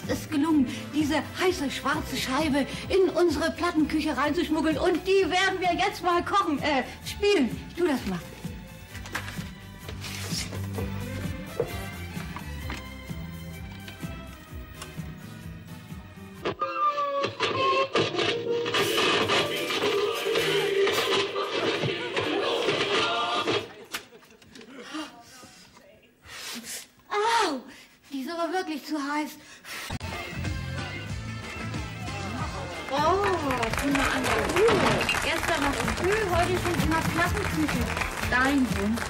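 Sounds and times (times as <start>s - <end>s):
vinyl record music: 16.4s - 23.8s.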